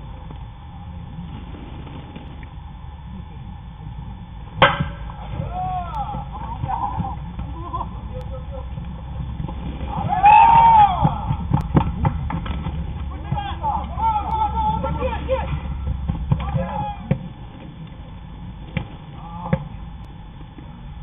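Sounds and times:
bat cracking against ball: 4.6 - 5.4
players shouting: 4.6 - 8.8, 9.5 - 11.8, 12.9 - 17.5.

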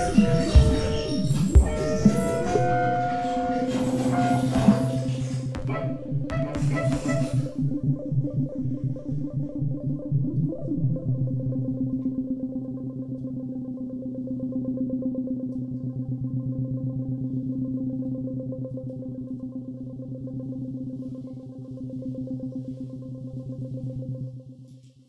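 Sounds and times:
pulsing low drone: 0.0 - 24.6.

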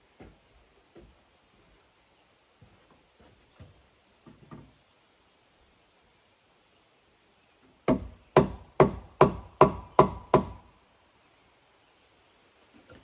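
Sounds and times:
tool striking wood: 7.9 - 10.6.

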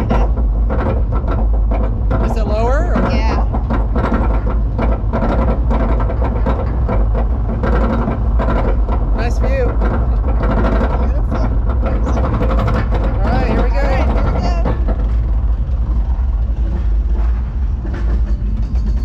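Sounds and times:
chain lift rattling and clicking: 0.0 - 17.2
roller coaster lift rumble: 0.0 - 19.0.

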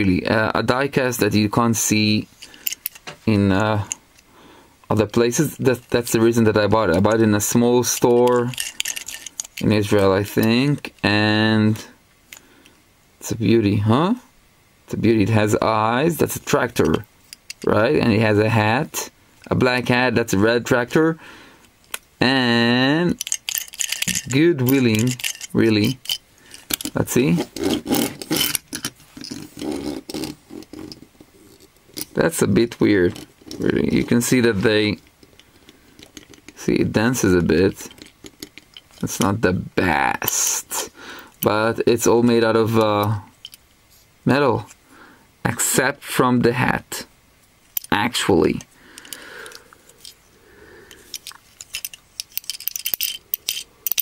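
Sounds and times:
toy tractor clicking and rattling: 2.4 - 3.2, 6.8 - 11.0, 23.1 - 27.0, 37.9 - 39.2, 50.9 - 54.0
toy tractor wheels rolling on table: 5.3 - 10.6, 23.1 - 35.4.

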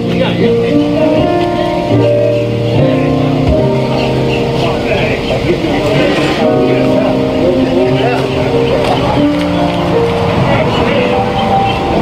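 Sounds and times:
keyboard sustained chords: 0.0 - 12.0.

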